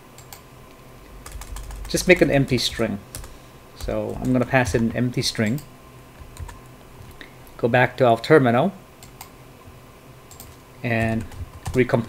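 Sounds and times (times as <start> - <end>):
computer keyboard keys clicking: 0.2 - 0.4, 1.2 - 4.8, 5.4 - 6.6, 9.0 - 9.3, 10.3 - 12.0.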